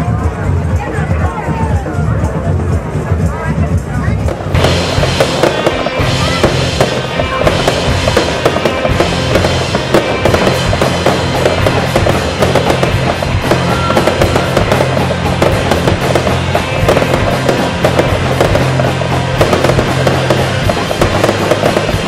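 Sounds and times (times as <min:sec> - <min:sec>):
fireworks bangs and crackles: 0:00.1 - 0:22.0.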